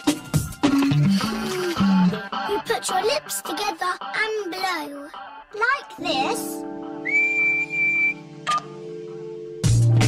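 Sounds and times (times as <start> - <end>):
background music chord: 1.9 - 7.2, 8.2 - 10.0
high whistled note: 7.0 - 8.6
short blip: 8.4 - 8.7.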